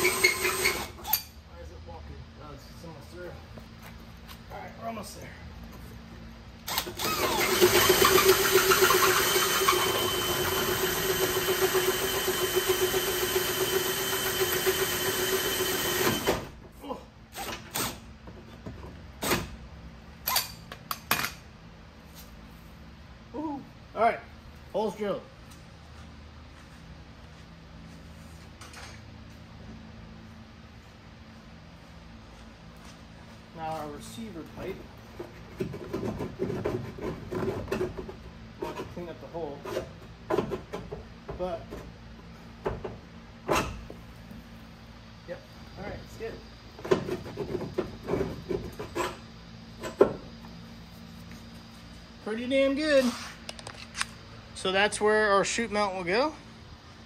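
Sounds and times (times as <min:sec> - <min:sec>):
low room hum: 0:00.0 - 0:57.0.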